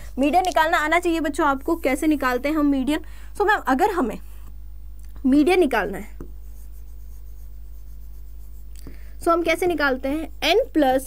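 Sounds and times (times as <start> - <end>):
steady low hum: 0.0 - 11.0
marker scratching on whiteboard: 6.2 - 11.0.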